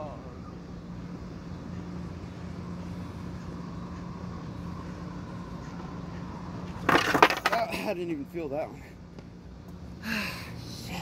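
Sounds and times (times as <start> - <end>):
skateboard wheels rolling on concrete: 2.1 - 9.8.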